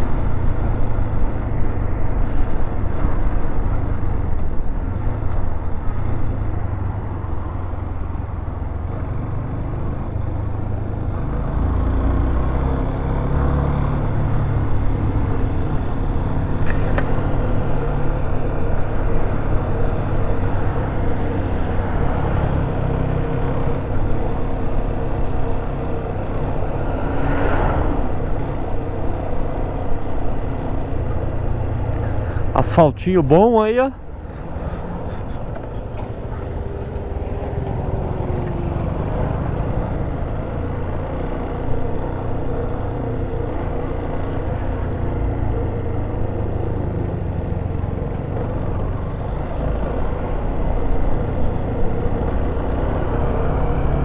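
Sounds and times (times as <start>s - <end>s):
wind and road rumble: 0.0s - 54.0s.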